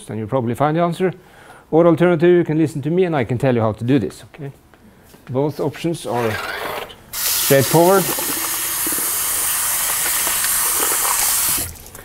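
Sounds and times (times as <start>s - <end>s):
loud steady hiss: 7.1s - 11.8s.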